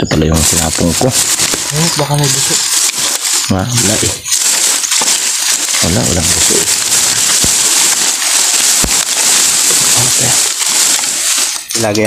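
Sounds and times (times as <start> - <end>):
person speaking: 0.0 - 12.0
hand sweeping through dry leaves: 0.4 - 11.6.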